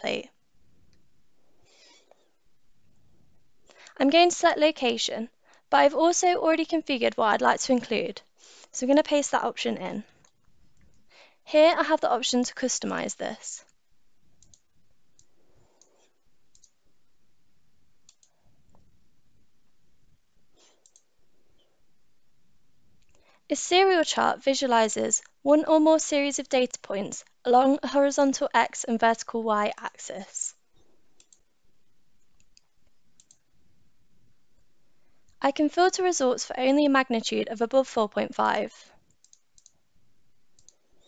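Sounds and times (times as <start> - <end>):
computer mouse clicks: 14.4 - 16.8, 18.0 - 18.9, 20.6 - 21.1, 31.2 - 31.5, 32.2 - 33.5, 38.9 - 39.8, 40.5 - 41.0.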